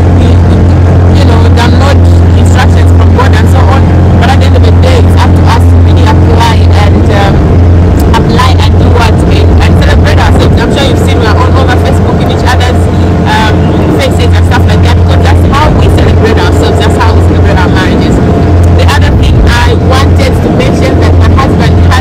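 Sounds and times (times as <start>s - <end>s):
woman talking: 0.0s - 7.4s, 8.0s - 22.0s
motorboat engine droning: 0.0s - 22.0s.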